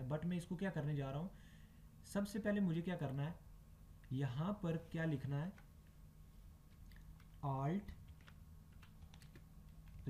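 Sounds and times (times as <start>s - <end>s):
low steady hum: 0.0s - 10.0s
keyboard typing: 6.7s - 10.0s.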